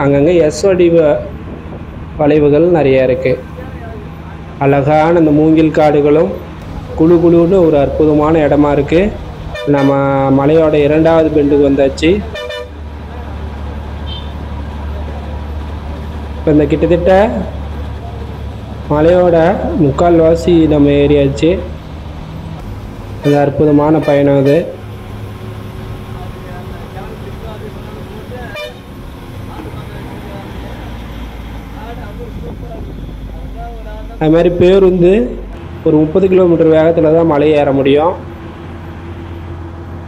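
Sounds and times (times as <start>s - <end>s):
bus engine droning: 0.0s - 40.0s
deep rumble: 6.4s - 13.9s
bus horn toot: 9.4s - 10.3s, 12.2s - 12.9s, 14.0s - 14.6s, 22.6s - 29.0s.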